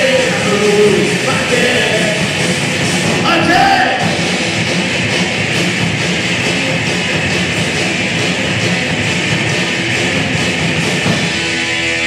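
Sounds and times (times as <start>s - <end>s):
live rock band playing: 0.0s - 12.0s
steady drum beat: 0.0s - 12.0s.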